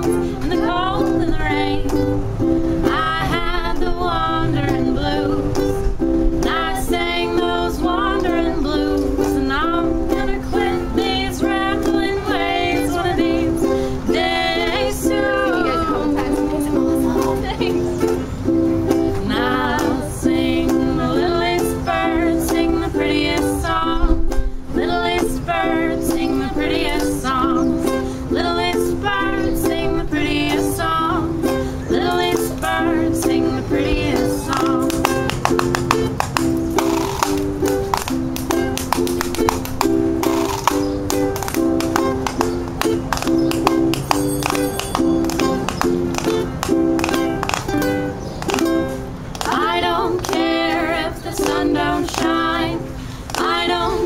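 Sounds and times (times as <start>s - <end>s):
ukulele strumming: 0.0s - 54.0s
women singing folk tune: 0.0s - 54.0s.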